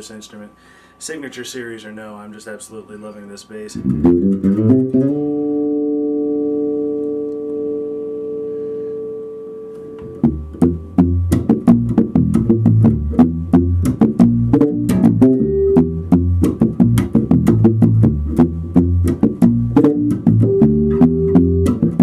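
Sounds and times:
fast plucked bass notes: 3.8s - 7.0s, 10.0s - 22.0s
electric bass chord ringing: 3.8s - 22.0s.

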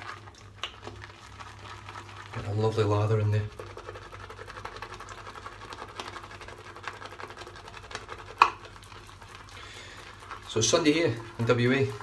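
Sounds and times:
brush swishing lather in bowl: 0.0s - 12.0s.

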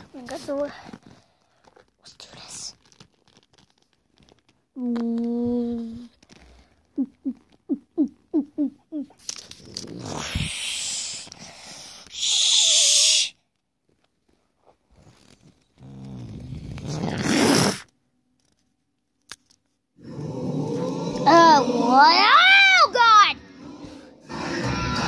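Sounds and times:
child making roaring monster noises: 9.9s - 11.3s, 12.1s - 13.4s, 20.0s - 25.0s.

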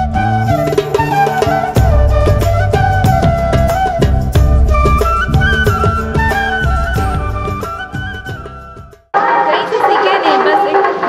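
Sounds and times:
people talking: 9.2s - 11.0s.

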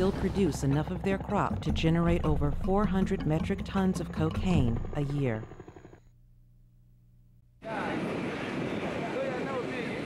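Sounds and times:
small plane engine running: 0.0s - 6.1s.

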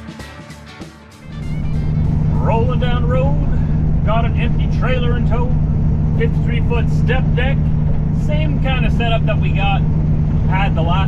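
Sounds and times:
diesel engine drone: 1.2s - 11.0s
road noise: 1.2s - 11.0s.

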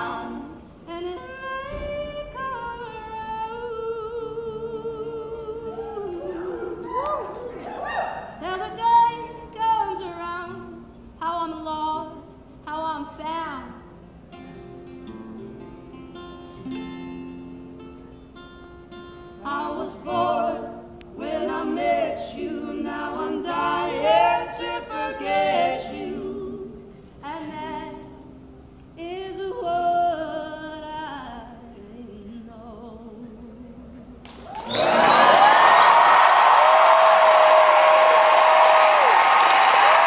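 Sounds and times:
voices singing in harmony: 0.0s - 9.1s, 19.4s - 28.1s
acoustic guitar picked: 8.7s - 21.6s.

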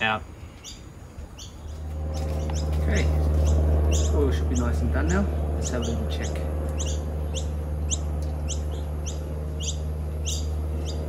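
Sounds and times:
steady low hum: 0.0s - 11.0s
bird chirping: 0.5s - 11.0s.

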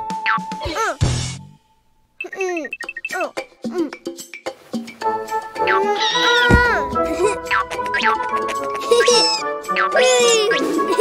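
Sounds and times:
cartoon background music: 2.2s - 11.0s
high cat-like cartoon cry: 5.8s - 6.5s, 8.9s - 10.6s
heavy low thud: 6.5s - 8.5s.

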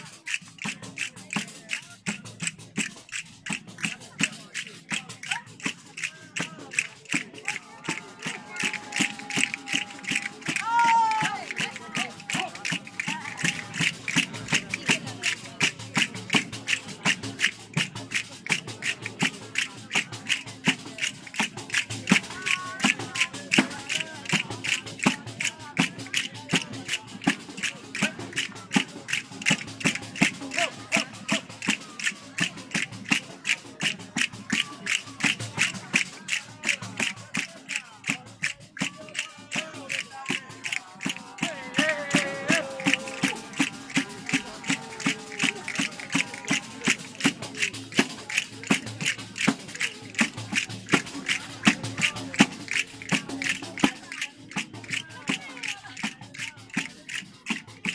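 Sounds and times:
frame drum with rattling jingles: 0.0s - 57.9s.

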